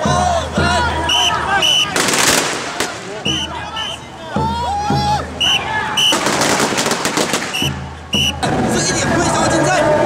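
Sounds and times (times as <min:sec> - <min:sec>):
firecrackers crackling: 0:01.6 - 0:03.5, 0:05.9 - 0:08.4.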